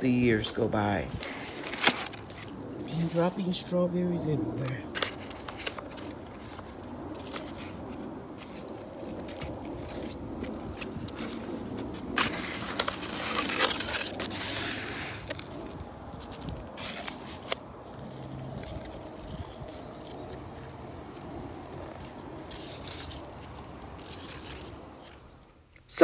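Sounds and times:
hands rustling through leaves: 0.1s - 25.6s.

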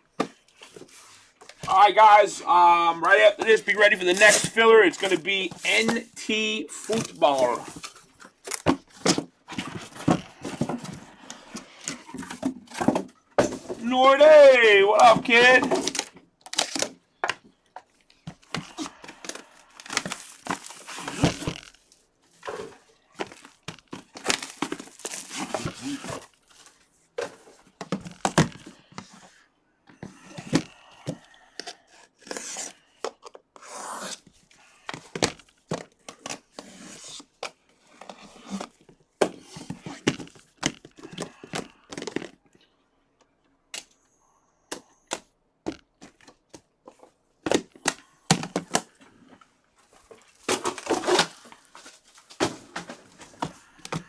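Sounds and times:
packaging tearing and crinkling: 15.8s - 17.0s, 23.3s - 26.6s.

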